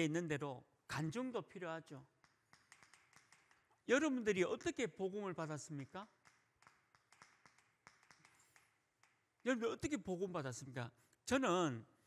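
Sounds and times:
chalk tapping on chalkboard: 0:02.2 - 0:03.7, 0:06.0 - 0:09.5.

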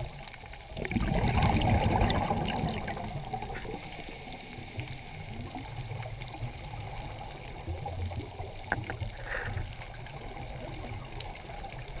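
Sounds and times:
faint underwater clicks: 0:00.0 - 0:12.0
underwater rumble: 0:00.0 - 0:12.0.

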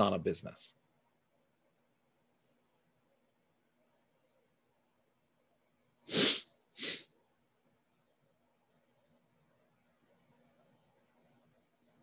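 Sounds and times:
sharp bursts of breath: 0:06.1 - 0:07.1.

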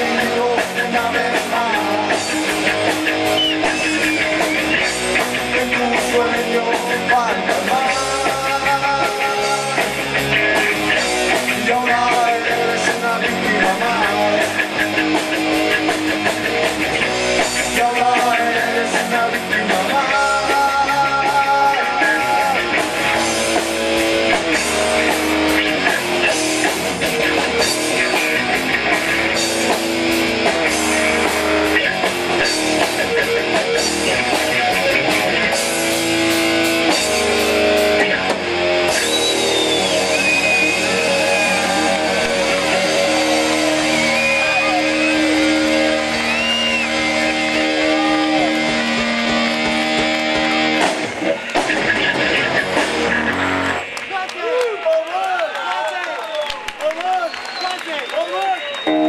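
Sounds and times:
live rock band playing: 0:00.0 - 0:54.4, 0:57.7 - 0:59.0
crowd cheering: 0:02.1 - 0:06.8, 0:19.6 - 0:59.0.

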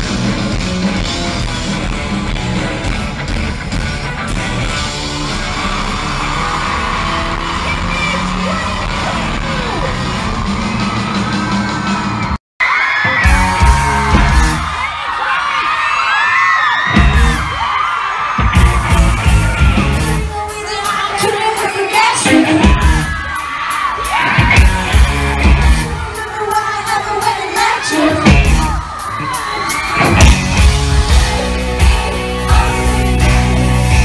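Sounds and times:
live rock band playing loud: 0:00.0 - 0:15.2, 0:16.8 - 0:34.0
crowd screaming: 0:00.0 - 0:34.0.

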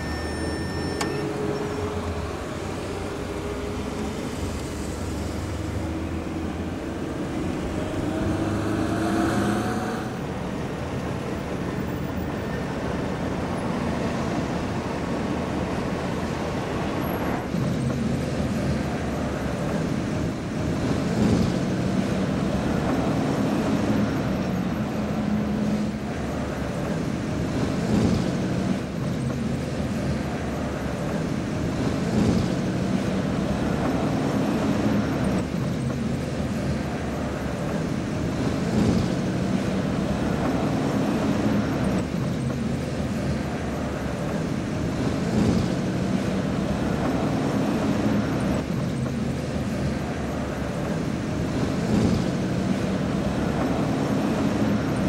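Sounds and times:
car engine and tyre noise: 0:00.0 - 0:55.0
passing traffic: 0:00.0 - 0:55.0.

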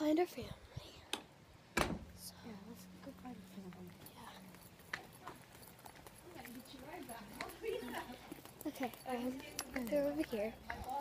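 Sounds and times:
footsteps on hard walkway: 0:03.0 - 0:11.0.

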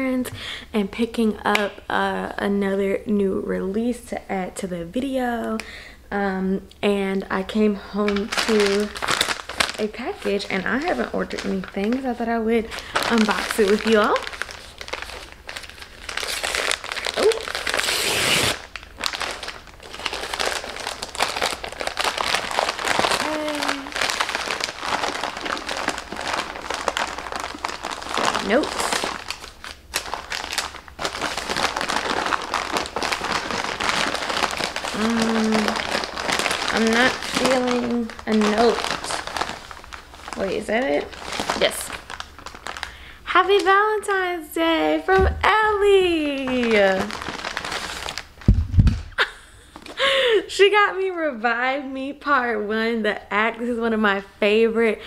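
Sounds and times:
packaging crinkling and rustling: 0:07.4 - 0:43.8, 0:45.1 - 0:50.1.

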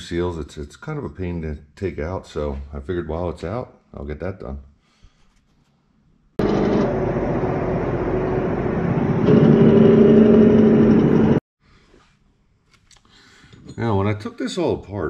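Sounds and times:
semi truck engine running: 0:06.4 - 0:11.4.

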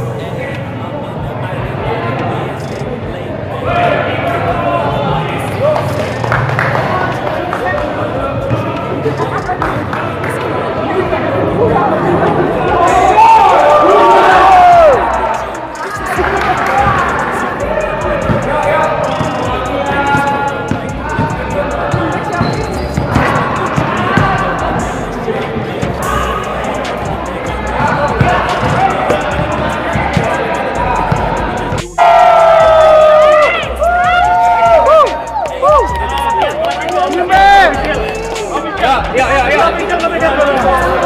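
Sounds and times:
crowd of voices: 0:00.0 - 0:41.0
group shouting: 0:12.6 - 0:20.4, 0:26.0 - 0:38.5
whoops and cheering: 0:12.9 - 0:15.4, 0:32.0 - 0:38.3
basketballs bouncing on hard floor: 0:18.2 - 0:18.5, 0:19.1 - 0:24.4, 0:27.8 - 0:30.5.

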